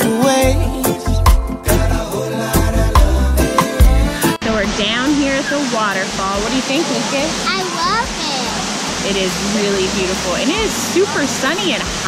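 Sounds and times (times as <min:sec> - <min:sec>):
waterfall rushing: 0:02.1 - 0:12.0
voices: 0:04.4 - 0:12.0.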